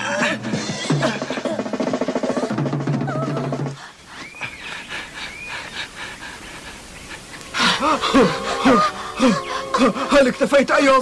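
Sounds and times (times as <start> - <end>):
music: 0.0 - 3.8, 7.5 - 11.0.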